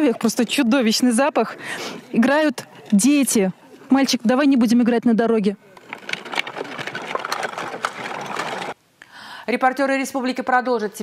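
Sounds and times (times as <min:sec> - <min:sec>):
plastic wheels rattling on gravel: 0:05.8 - 0:08.8.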